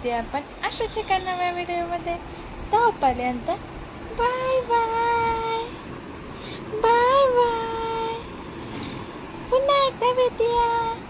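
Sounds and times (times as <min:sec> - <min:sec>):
person sing-song vocalising: 0:00.6 - 0:05.8, 0:06.4 - 0:11.0.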